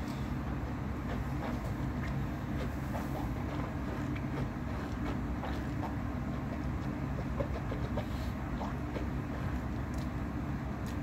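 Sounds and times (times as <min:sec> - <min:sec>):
low mechanical hum and rumble: 0:00.0 - 0:11.0.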